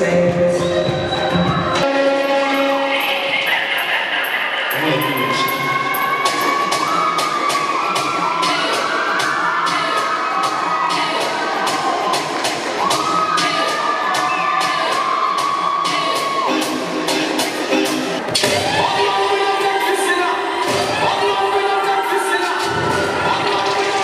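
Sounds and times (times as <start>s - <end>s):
crowd cheering and shouting: 0.0s - 24.0s
dancehall music over speakers: 0.0s - 24.0s.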